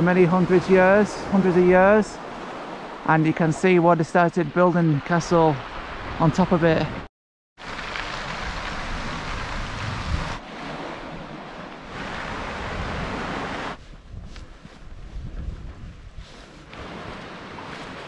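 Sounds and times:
surf washing against rocks: 0.0s - 6.9s, 7.6s - 13.8s, 16.5s - 18.0s
wind rushing over microphone: 8.1s - 18.0s.

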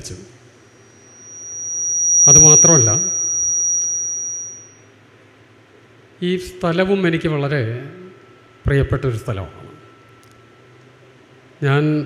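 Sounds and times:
microphone feedback whistle: 0.8s - 4.8s.

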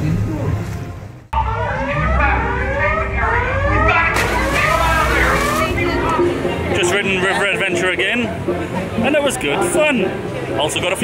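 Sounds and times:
alarm siren whooping: 1.4s - 6.2s
water: 4.1s - 11.0s.

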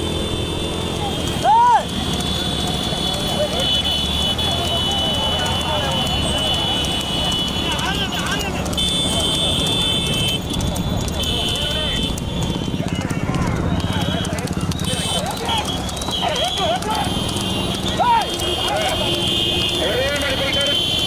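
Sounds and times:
horse hooves on asphalt: 0.0s - 21.0s
road and motorbike noise: 0.0s - 21.0s
voices calling out: 0.0s - 21.0s.

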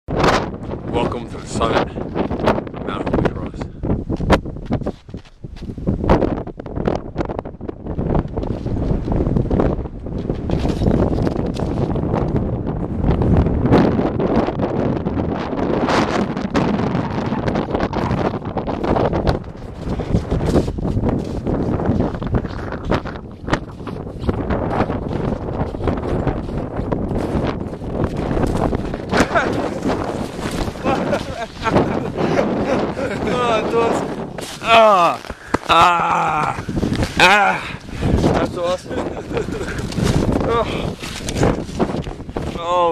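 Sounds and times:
wind buffeting microphone: 0.1s - 42.9s.

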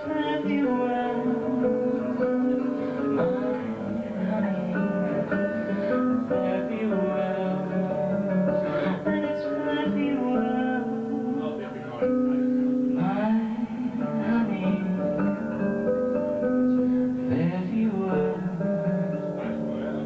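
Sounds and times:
acoustic guitar: 0.0s - 20.0s
person singing folk ballad: 0.0s - 20.0s.

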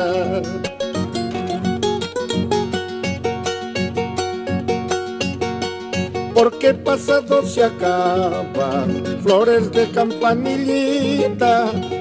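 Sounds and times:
charango and guitar strummed: 0.0s - 12.0s.

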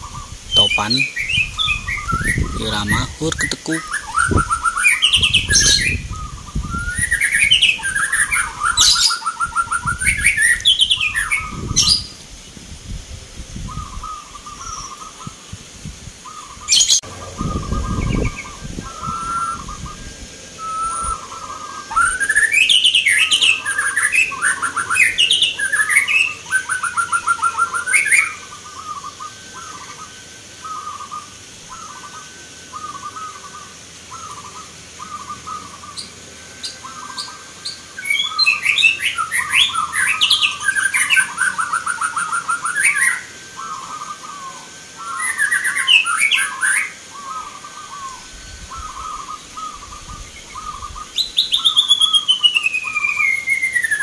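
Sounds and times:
doves cooing: 0.0s - 12.2s, 13.5s - 54.0s
chattering and trilling birdsong: 0.0s - 54.0s.

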